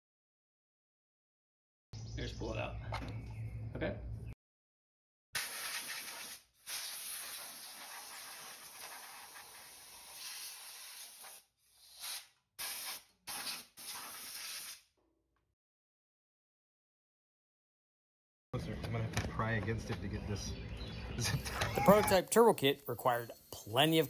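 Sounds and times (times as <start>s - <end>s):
hissing spray: 5.4s - 14.8s.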